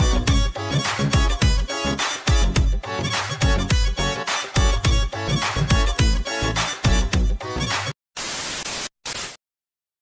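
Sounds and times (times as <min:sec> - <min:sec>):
music with heavy beat: 0:00.0 - 0:07.9
static hiss: 0:08.2 - 0:09.4.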